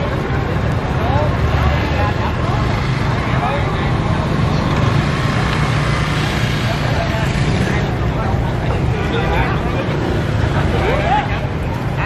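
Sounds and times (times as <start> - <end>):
crowd chatter: 0.0 - 12.0
motorbike and traffic engines: 0.0 - 12.0.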